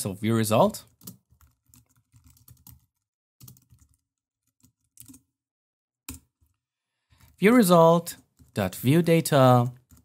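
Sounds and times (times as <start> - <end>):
faint computer keyboard typing: 0.8 - 5.3, 6.1 - 7.4, 8.1 - 8.6, 9.7 - 10.0.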